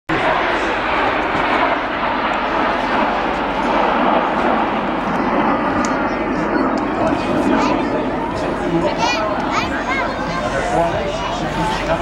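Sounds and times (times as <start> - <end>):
jets flying overhead: 0.1 - 12.0
voices: 0.1 - 12.0.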